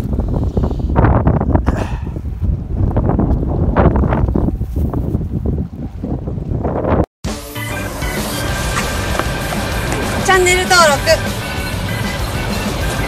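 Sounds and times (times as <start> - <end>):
wind buffeting microphone: 0.0 - 7.1
music: 7.2 - 13.0.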